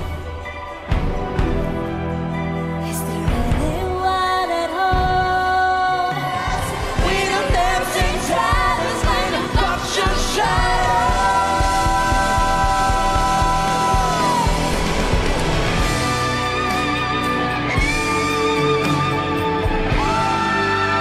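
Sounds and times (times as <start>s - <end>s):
band accompaniment: 0.0s - 21.0s
person singing: 2.8s - 16.2s.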